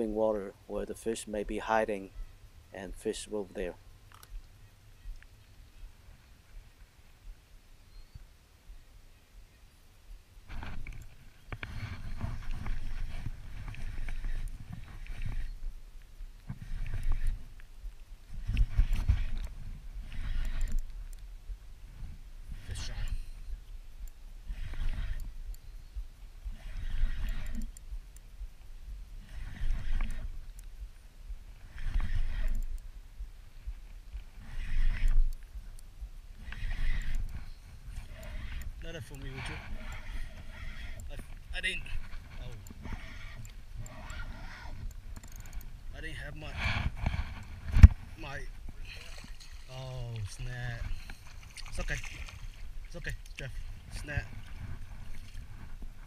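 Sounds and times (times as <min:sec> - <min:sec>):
river water sloshing: 0:48.6 - 0:56.0.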